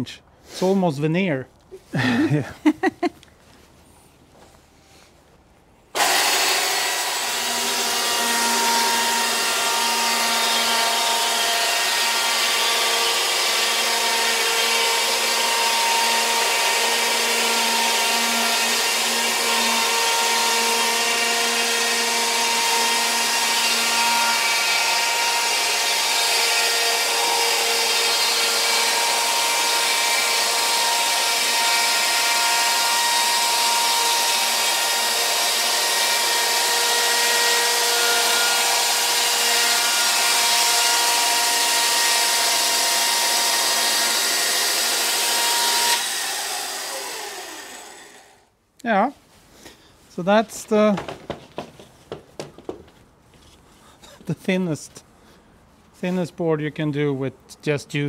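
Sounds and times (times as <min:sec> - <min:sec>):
electric chainsaw cutting log: 0:05.9 - 0:48.5.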